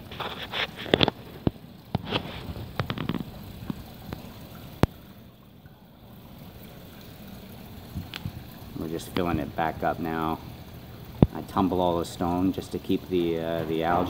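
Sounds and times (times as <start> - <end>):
water trickling over pebbles: 0.0 - 14.0
person speaking: 11.3 - 14.0.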